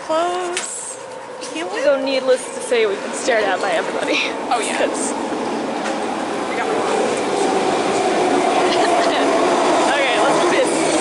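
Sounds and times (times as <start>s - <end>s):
constant humming tone: 0.0s - 11.0s
train pulling into station: 0.0s - 11.0s.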